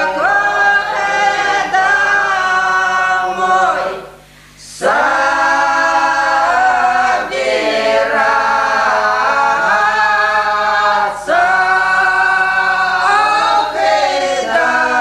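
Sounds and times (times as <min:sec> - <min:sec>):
women singing a cappella folk song: 0:00.0 - 0:15.0.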